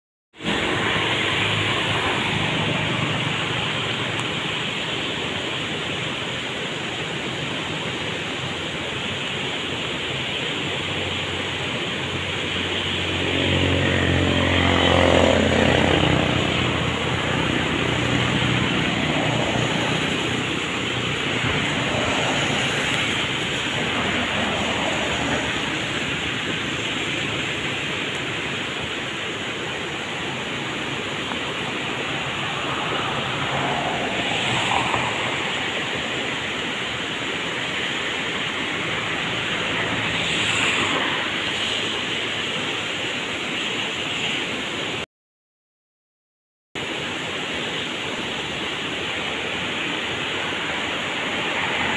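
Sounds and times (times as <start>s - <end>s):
engine passing: 0.4s - 5.6s, 11.2s - 42.7s, 50.1s - 51.9s
water rushing over rocks: 0.4s - 45.0s, 46.8s - 51.9s.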